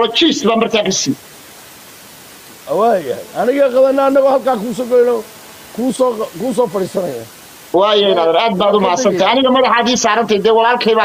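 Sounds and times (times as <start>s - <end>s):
man talking: 0.0s - 1.2s, 2.6s - 11.0s
background hiss: 0.0s - 11.0s.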